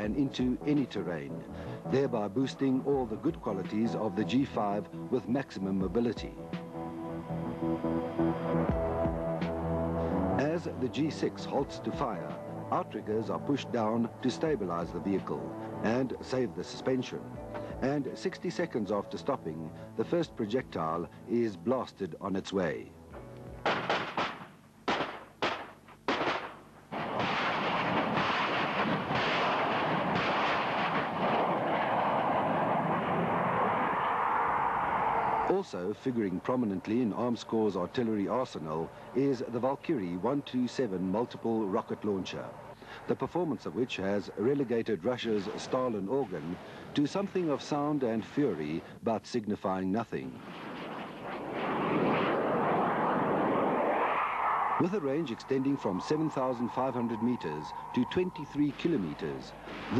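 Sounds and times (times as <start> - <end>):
short sharp cracks: 23.6 - 32.7
artillery gun firing: 23.6 - 33.9
steady rushing noise: 27.0 - 38.6, 50.3 - 59.9.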